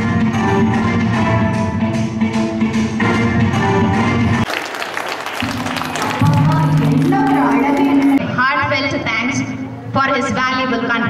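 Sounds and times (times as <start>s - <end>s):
audience applause: 4.4s - 8.2s
loud dance music: 5.5s - 8.2s.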